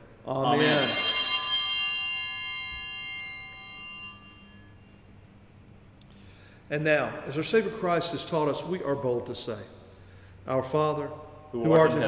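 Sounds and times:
small bell ringing: 0:00.4 - 0:04.8.

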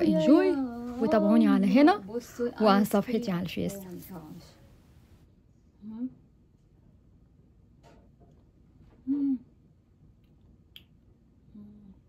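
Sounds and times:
person humming appreciatively: 0:09.0 - 0:09.5.

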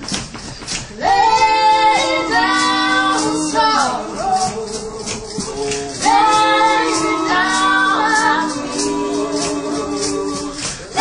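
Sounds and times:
light percussive beat: 0:00.0 - 0:11.0
group singing harmony: 0:00.9 - 0:11.0.

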